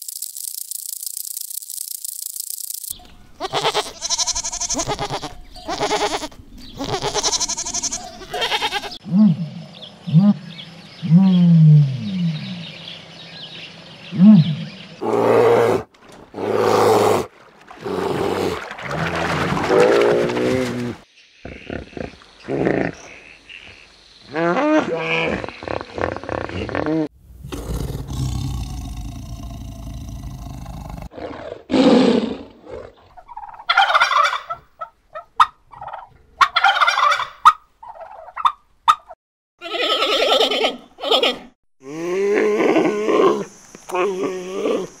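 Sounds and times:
animal calls and growls: 7.8 - 34.7, 39.8 - 45.0
tiger growling and roaring: 14.1 - 23.1, 24.3 - 33.1.

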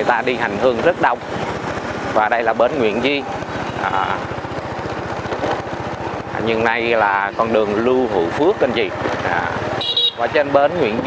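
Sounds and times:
motorbike engine running: 0.0 - 11.0
road and wind noise: 0.0 - 11.0.

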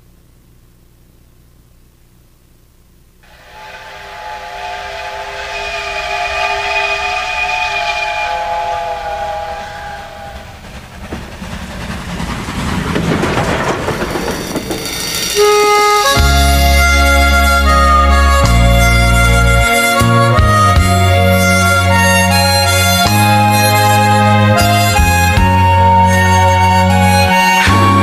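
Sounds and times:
train horn chord: 3.2 - 10.7
train rushing and rattling past: 3.2 - 28.0
music: 15.0 - 28.0.

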